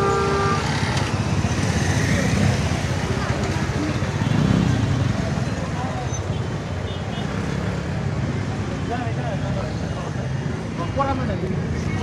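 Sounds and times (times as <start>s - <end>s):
vehicle engines idling and passing: 0.0s - 12.0s.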